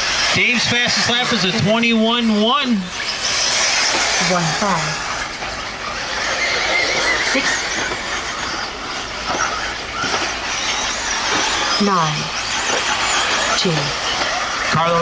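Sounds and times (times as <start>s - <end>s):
electric rc car motors whining: 0.0s - 15.0s.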